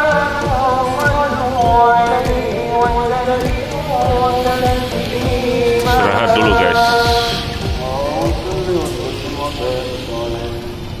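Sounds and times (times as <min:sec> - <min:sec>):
man chanting over loudspeaker: 0:00.8 - 0:11.0.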